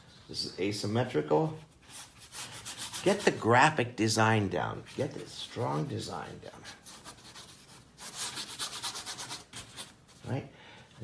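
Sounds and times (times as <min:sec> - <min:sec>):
paintbrush scrubbing paper: 0:01.6 - 0:03.5, 0:04.8 - 0:10.0.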